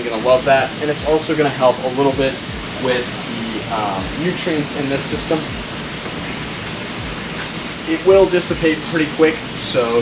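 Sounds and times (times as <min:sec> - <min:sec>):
aquarium water rushing: 0:00.0 - 0:10.0.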